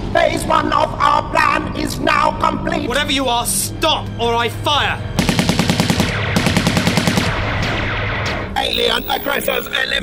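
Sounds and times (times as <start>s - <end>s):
dramatic background music: 0.0s - 10.0s
automatic gunfire: 5.2s - 8.4s.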